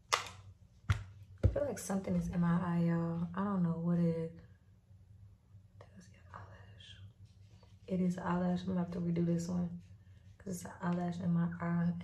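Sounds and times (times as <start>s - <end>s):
low room hum: 0.0s - 12.0s
woman whispering: 5.8s - 7.1s.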